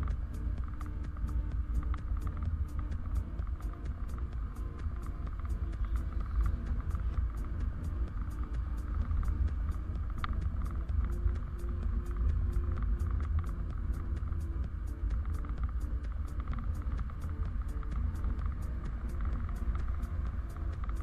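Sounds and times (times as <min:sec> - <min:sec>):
motorcycle engine rumble: 0:00.0 - 0:21.0
music with an even beat: 0:00.0 - 0:21.0
wind noise: 0:00.0 - 0:21.0.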